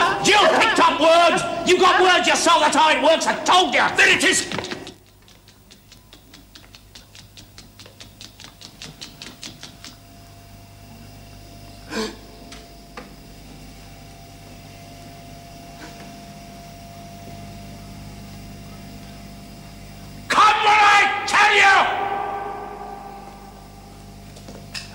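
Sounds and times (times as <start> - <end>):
electrical hum with high tone: 0.0 - 24.9
rapid mechanical clicking: 3.9 - 10.0.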